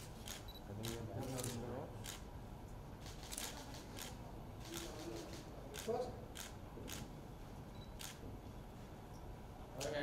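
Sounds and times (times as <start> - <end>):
low room hum: 0.0 - 10.0
camera shutter clicks: 0.2 - 2.3, 3.0 - 7.1, 8.0 - 8.2.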